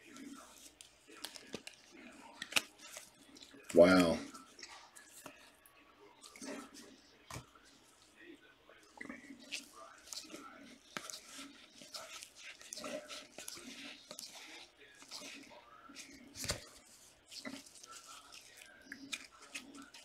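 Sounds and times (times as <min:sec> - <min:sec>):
trading cards rustling: 0:00.0 - 0:05.4, 0:09.3 - 0:20.0.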